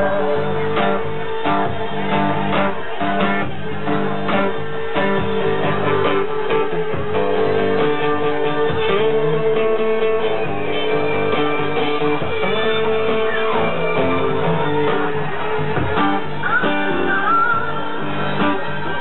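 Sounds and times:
acoustic guitar playing: 0.0 - 19.0.

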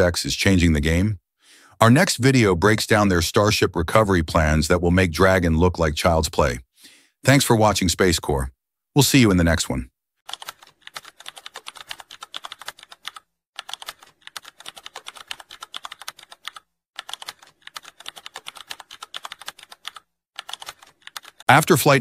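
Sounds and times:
computer keyboard typing: 10.3 - 21.5.

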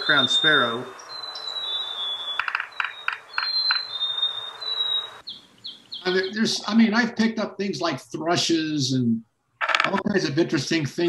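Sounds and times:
short bird chirps: 0.0 - 6.3
sparrow whistling: 0.0 - 6.3
background hiss: 4.4 - 11.0.

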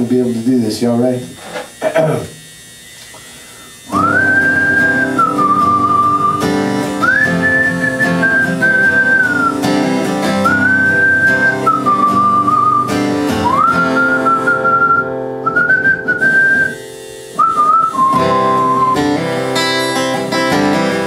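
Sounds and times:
acoustic guitar: 0.0 - 21.0
man whistling a melody: 3.9 - 19.3.

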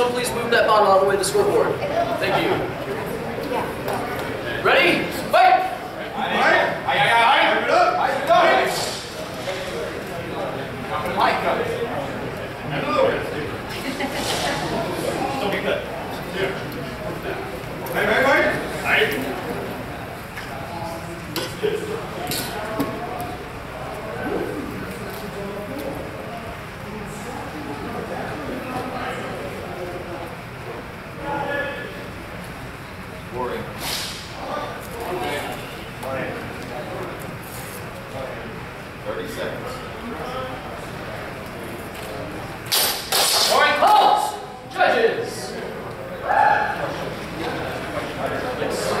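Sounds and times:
low background talk: 0.0 - 49.0
swords clacking together: 42.7 - 43.6
people shouting: 46.2 - 46.9.

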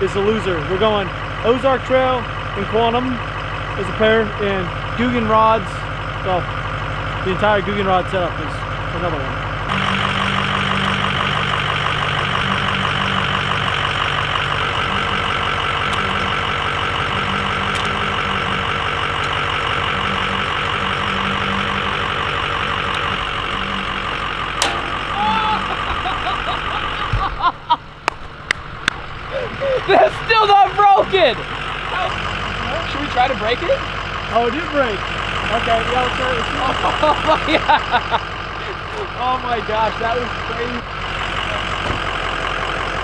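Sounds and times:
pickup truck engine running: 0.0 - 43.0
people shouting excitedly: 25.1 - 25.9
low thump: 27.0 - 27.5.

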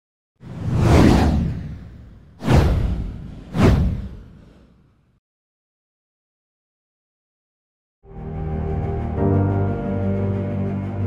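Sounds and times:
whoosh: 0.4 - 5.1.

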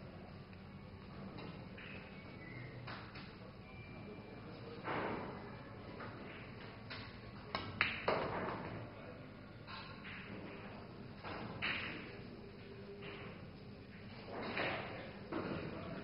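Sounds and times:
pool balls clicking: 2.8 - 3.4, 5.9 - 8.9, 9.7 - 16.0
cue tip striking ball: 7.6 - 8.7.

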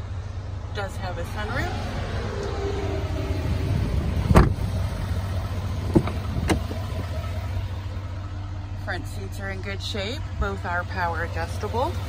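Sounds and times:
pickup truck idling: 0.0 - 12.0.

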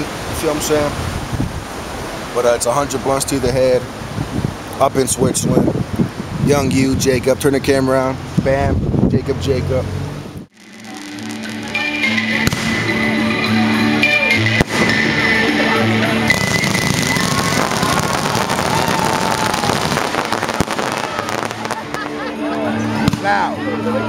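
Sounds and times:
fireworks crackling and popping: 10.5 - 12.9, 14.6 - 15.2, 16.3 - 22.3
sharp bang: 12.0 - 13.0.

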